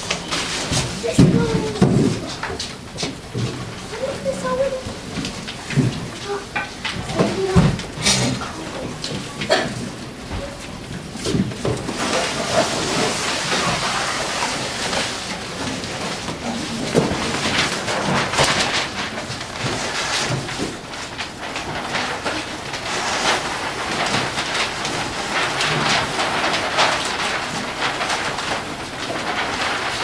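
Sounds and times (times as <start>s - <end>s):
cardboard and paper rustling: 0.0s - 30.0s.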